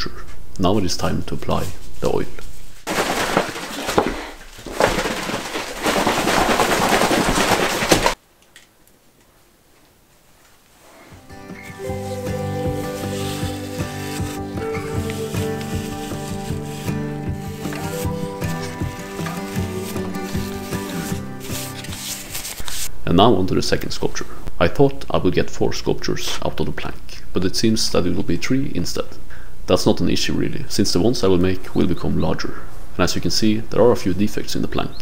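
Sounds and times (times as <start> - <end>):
tin rattling when shaken: 2.9 - 8.2
background music sustained notes: 11.2 - 22.2.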